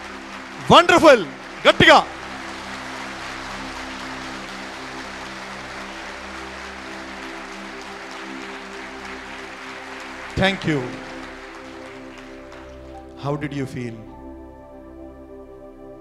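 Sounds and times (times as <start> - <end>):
crowd clapping: 0.0 - 14.0
held music chord: 0.0 - 16.0.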